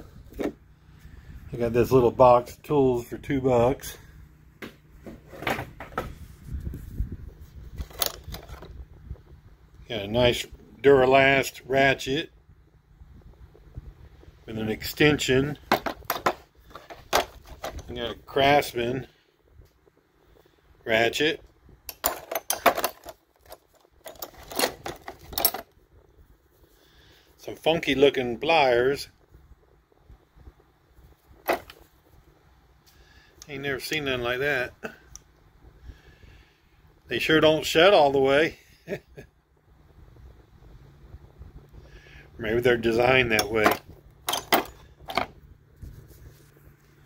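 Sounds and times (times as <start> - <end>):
metal tools clattering in toolbox: 7.8 - 8.7, 15.7 - 17.9, 21.9 - 25.6, 31.5 - 31.8, 43.4 - 45.3.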